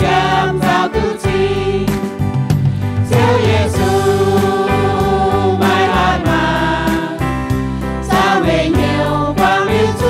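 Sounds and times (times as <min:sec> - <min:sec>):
choir singing a hymn: 0:00.0 - 0:02.1, 0:03.0 - 0:10.0
keyboard accompaniment: 0:00.0 - 0:10.0.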